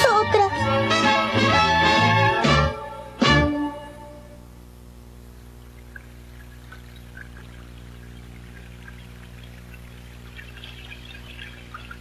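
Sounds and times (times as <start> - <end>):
steady low hum: 2.2 - 12.0
water trickling and dripping: 5.4 - 12.0.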